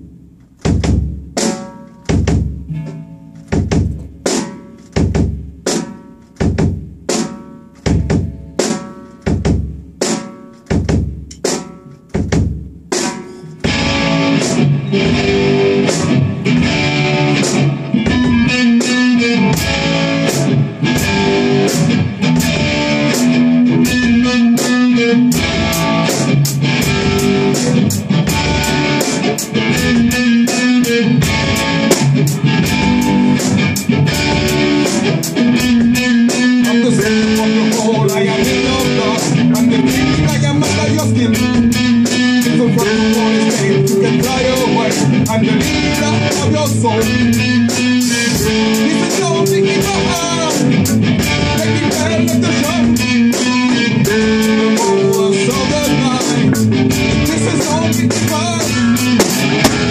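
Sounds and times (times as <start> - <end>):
band striking accented chords: 0.0 - 59.9
bass guitar: 0.0 - 59.9
drum kit with cymbals: 0.0 - 59.9
electric guitar: 13.3 - 59.9.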